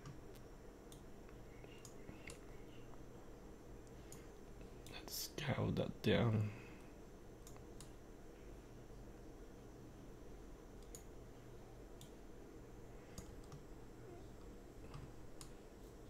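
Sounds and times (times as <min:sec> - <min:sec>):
computer mouse clicks: 0:00.0 - 0:02.5, 0:07.4 - 0:08.0, 0:10.8 - 0:11.1, 0:12.0 - 0:12.2, 0:13.1 - 0:13.7.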